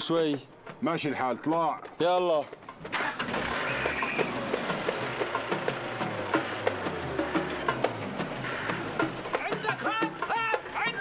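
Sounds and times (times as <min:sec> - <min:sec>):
truck engine idling: 0:02.9 - 0:09.5.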